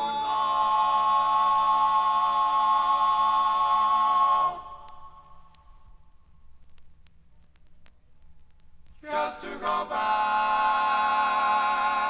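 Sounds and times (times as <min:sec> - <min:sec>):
male quartet singing a cappella: 0:00.0 - 0:05.0, 0:09.0 - 0:12.0
faint clicks: 0:03.9 - 0:09.0.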